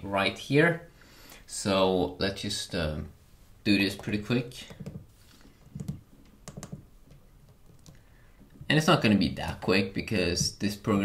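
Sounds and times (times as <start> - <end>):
fingertips tapping touchscreen: 4.0 - 8.7.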